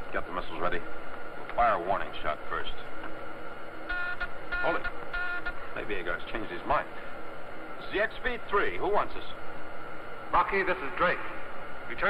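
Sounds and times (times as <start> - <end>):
steady high whine: 0.0 - 12.0
short electronic beeps: 3.9 - 5.6.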